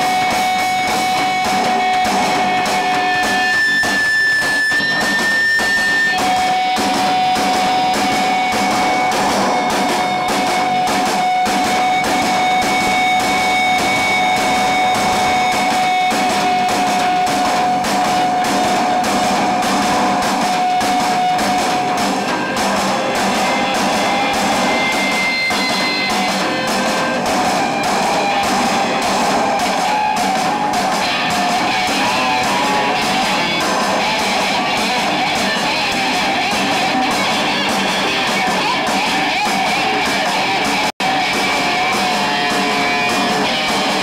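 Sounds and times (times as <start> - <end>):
long held high tone: 0.0 - 40.0
distorted electric guitar: 0.0 - 44.0
drum kit: 0.0 - 44.0
bass guitar: 6.1 - 44.0.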